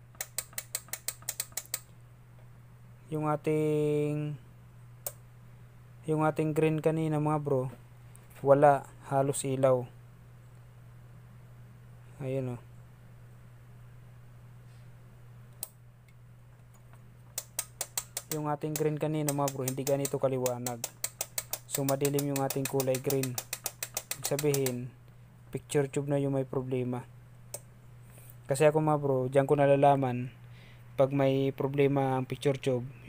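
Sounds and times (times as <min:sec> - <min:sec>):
low electrical hum: 0:00.0 - 0:33.0
rapid mechanical clicking: 0:00.1 - 0:01.9, 0:17.4 - 0:24.8.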